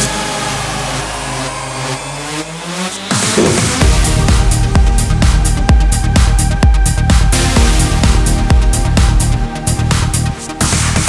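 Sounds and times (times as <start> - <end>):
rising synth riser: 0.1 - 5.2.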